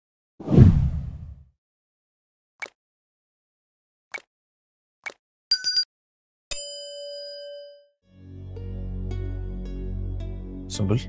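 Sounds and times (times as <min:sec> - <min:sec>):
whoosh transition effect: 0:00.4 - 0:01.4.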